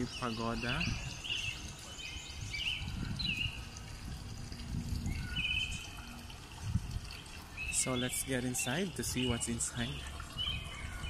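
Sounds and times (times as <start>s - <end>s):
small birds chirping: 0.0s - 3.9s, 5.0s - 6.3s, 7.0s - 11.0s
low outdoor rumble: 0.6s - 7.6s.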